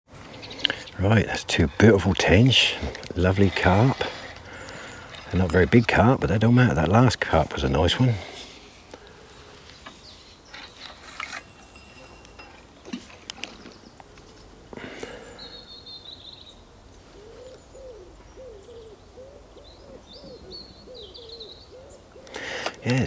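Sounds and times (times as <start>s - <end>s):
small bird chirping: 15.3s - 22.2s
pigeon cooing: 17.1s - 23.0s.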